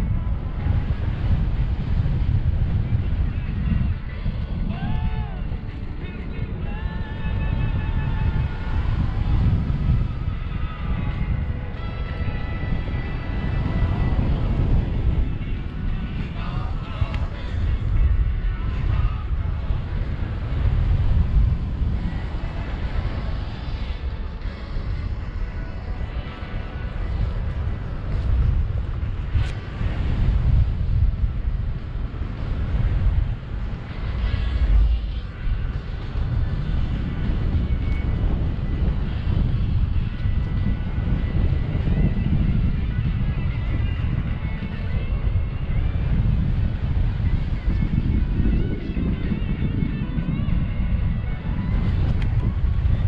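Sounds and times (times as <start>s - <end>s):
wind buffeting microphone: 0.0s - 53.0s.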